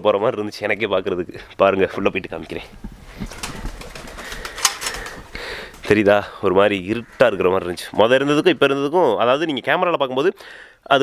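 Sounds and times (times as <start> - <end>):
pigeons stirring: 2.2 - 8.2
sharp rustles: 2.4 - 5.8.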